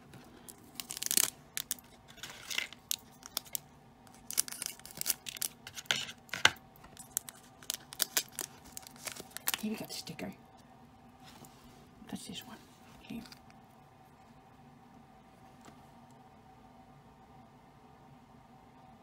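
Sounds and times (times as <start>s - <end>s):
papery rustles: 0.0s - 9.9s.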